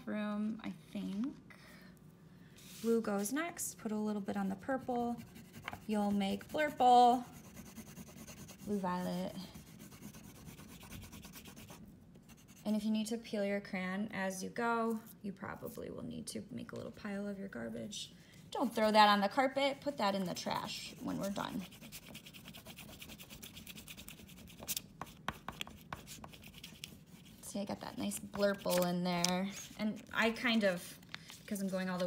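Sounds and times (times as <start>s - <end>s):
oil pastel rubbing on paper: 5.0s - 12.8s, 20.0s - 27.5s.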